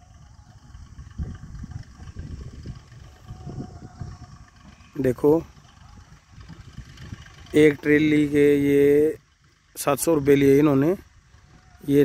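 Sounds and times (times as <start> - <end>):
distant tractor rumble: 0.0 - 12.0.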